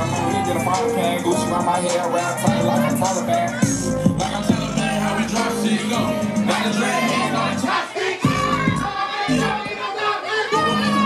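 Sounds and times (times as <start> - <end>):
crowd singing and shouting: 0.0 - 11.0
hip-hop music: 0.0 - 11.0.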